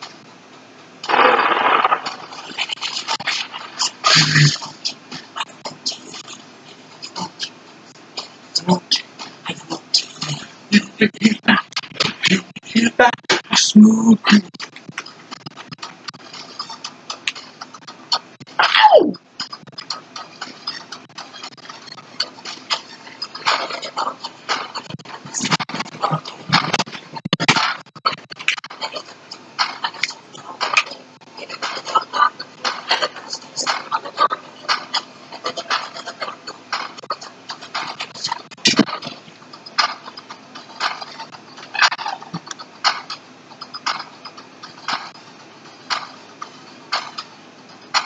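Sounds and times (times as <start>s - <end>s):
high squeaks and clicks: 1.0s - 7.6s, 14.3s - 48.0s
man laughing: 10.7s - 11.7s.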